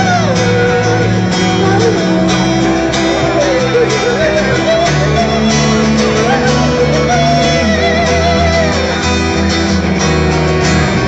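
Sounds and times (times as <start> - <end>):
guitar: 0.0 - 11.0
live band playing loudly: 0.0 - 11.0.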